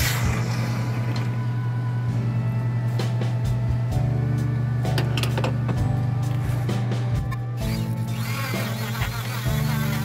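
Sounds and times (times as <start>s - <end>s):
background music with pulsing bass: 0.0s - 10.0s.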